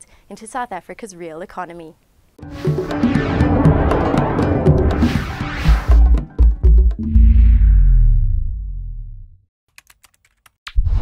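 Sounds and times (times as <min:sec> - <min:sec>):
loud sharp hit: 0:02.4 - 0:06.4
low music: 0:02.4 - 0:07.7.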